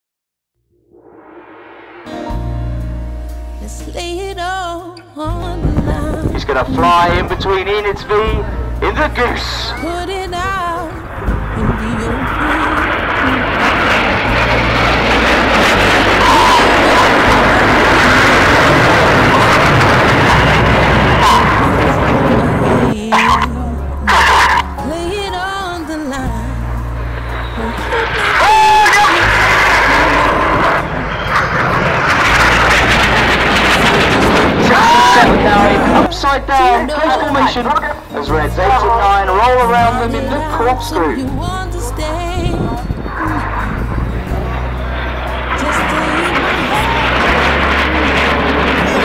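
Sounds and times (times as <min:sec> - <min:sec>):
jets flying past: 0:00.8 - 0:03.4, 0:05.9 - 0:23.4, 0:24.1 - 0:41.5, 0:42.1 - 0:49.0
music over public address: 0:02.1 - 0:49.0
public address voice: 0:06.2 - 0:10.9, 0:34.6 - 0:42.2.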